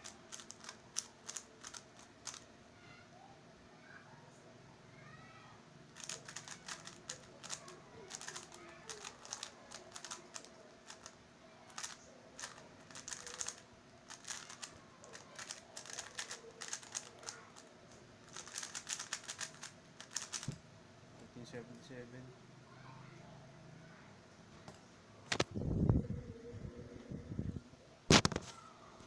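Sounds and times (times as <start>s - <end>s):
puzzle cube plastic clicking: 0.0s - 2.4s, 6.0s - 17.4s, 18.3s - 20.6s.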